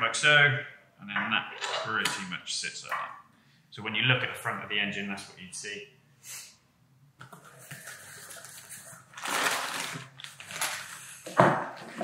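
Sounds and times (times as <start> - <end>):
plastic packaging rustling: 7.4 - 11.9.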